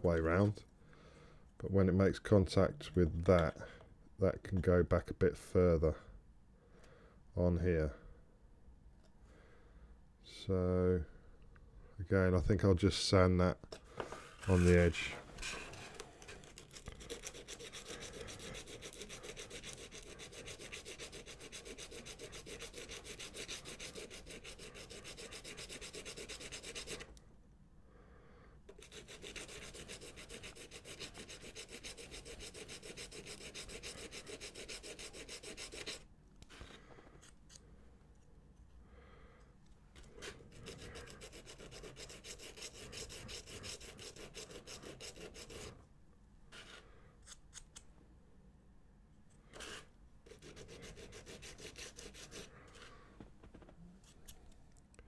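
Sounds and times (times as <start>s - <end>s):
plastic part sanded on sandpaper: 14.4s - 27.1s, 28.7s - 36.8s, 40.2s - 45.8s, 49.6s - 52.9s.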